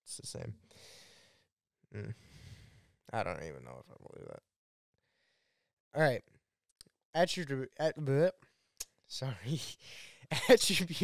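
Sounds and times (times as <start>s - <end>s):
man humming mm: 1.9s - 2.3s.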